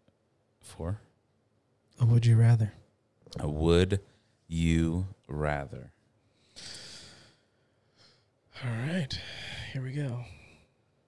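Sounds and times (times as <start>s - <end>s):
person exhaling: 6.5s - 7.4s.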